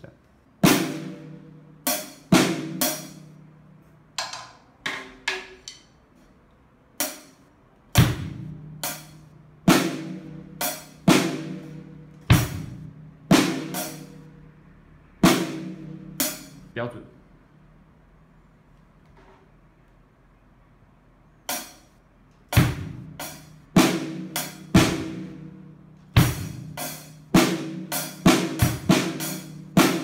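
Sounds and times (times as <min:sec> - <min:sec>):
drum kit strokes: 0:22.5 - 0:25.5, 0:26.1 - 0:30.0.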